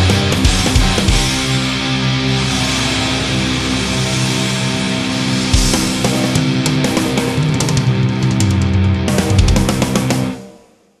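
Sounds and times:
heavy rock music with electric guitar: 0.0s - 10.7s.

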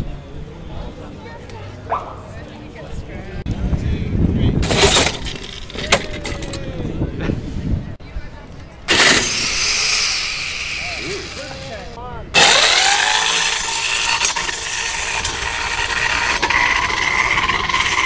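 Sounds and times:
crowd chatter: 0.0s - 4.8s, 5.4s - 18.0s
electric motor high whine: 8.9s - 18.0s.

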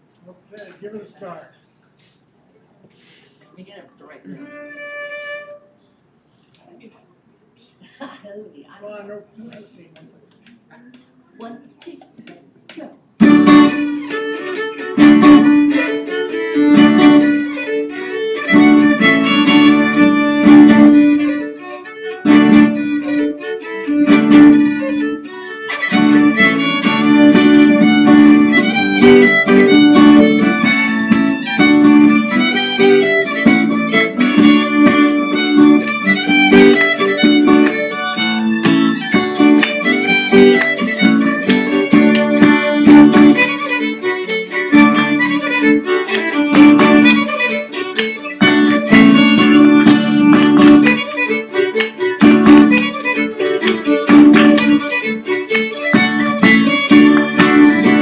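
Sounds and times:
fiddles: 4.3s - 6.6s, 13.2s - 58.0s
acoustic guitar: 13.2s - 58.0s.

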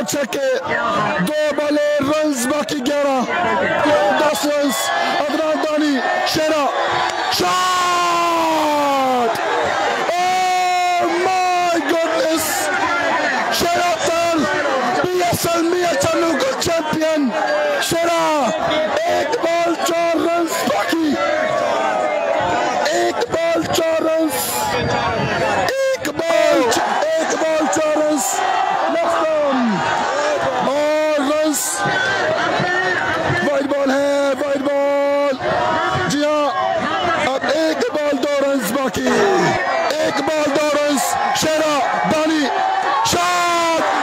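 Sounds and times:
man calling over loudspeaker: 0.0s - 9.4s, 10.0s - 44.0s
crowd noise: 0.0s - 44.0s.

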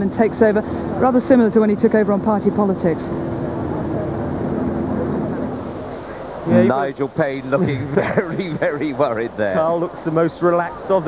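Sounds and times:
engine-like drone: 0.0s - 11.0s.

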